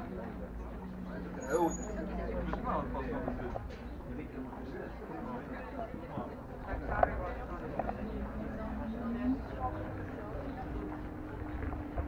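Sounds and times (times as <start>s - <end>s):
people talking: 0.0s - 12.0s
electric scooter rolling on paving: 6.5s - 12.0s.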